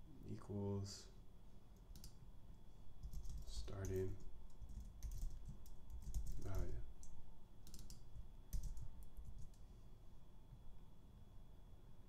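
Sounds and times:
computer keyboard typing: 0:01.9 - 0:02.2, 0:03.0 - 0:09.6.

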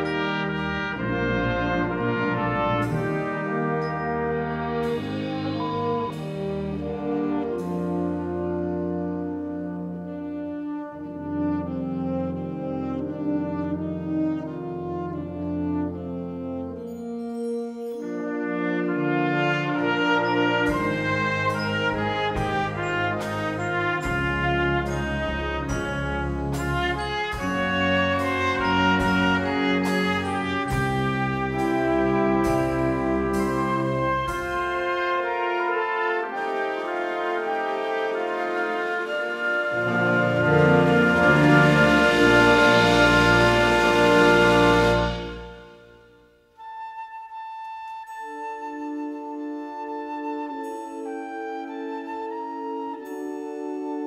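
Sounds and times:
wind band brass chords: 0:00.0 - 0:47.3.

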